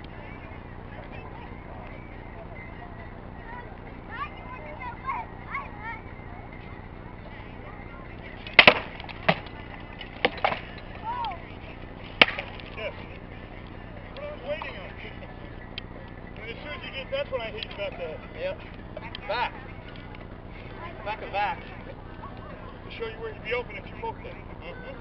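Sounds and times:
rattan swords cracking: 8.4 - 11.4, 12.0 - 12.8.

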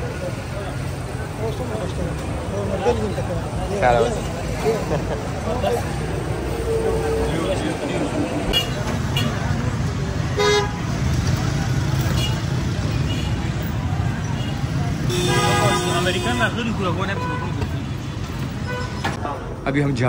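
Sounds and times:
traffic engines rumbling: 0.0 - 20.0
vehicle horn toots: 6.5 - 9.4, 15.1 - 16.6.

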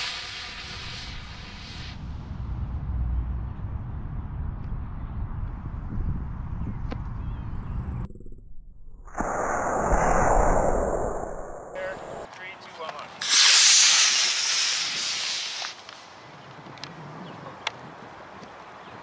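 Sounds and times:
rocket motor rushing hiss: 0.0 - 2.0, 9.1 - 12.3, 13.2 - 16.1
dull rush of noise: 7.7 - 12.3.

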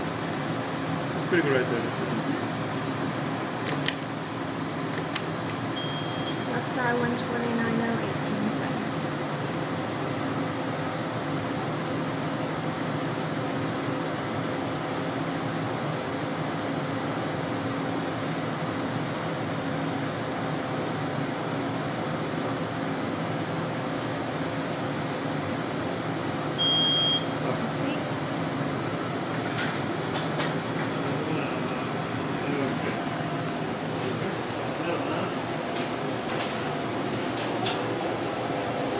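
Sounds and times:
laser machine hum: 24.0 - 38.9.

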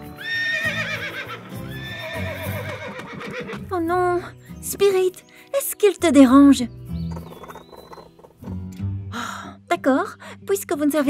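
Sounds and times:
background music low notes: 0.0 - 11.0.

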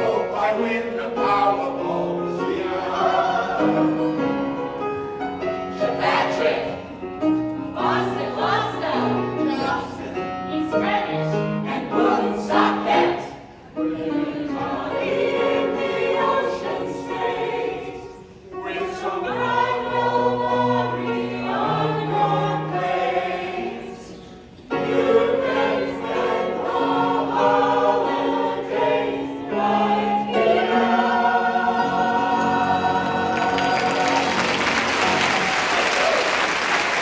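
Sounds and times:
mixed choir singing: 0.0 - 37.0.

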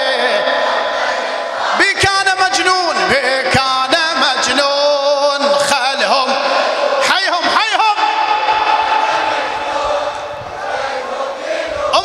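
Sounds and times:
crowd chest-beating: 0.0 - 2.4, 6.1 - 12.0
steady held tone over speakers: 0.0 - 12.0.

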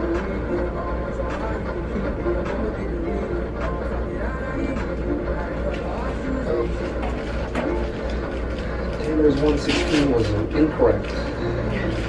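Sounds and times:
soft background music: 0.0 - 12.0
steady low hum: 0.0 - 12.0.

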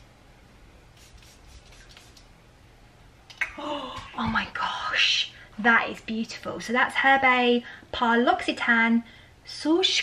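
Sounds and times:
perfume atomizer spraying: 0.9 - 2.3.

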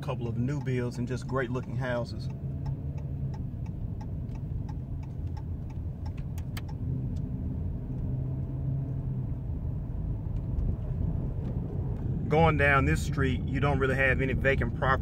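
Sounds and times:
car engine and road rumble: 0.0 - 15.0
light regular ticking: 0.2 - 7.3.

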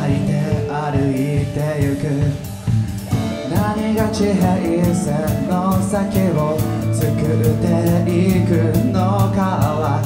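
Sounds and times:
man singing lead vocal: 0.0 - 10.0
rock band playing live: 0.0 - 10.0.

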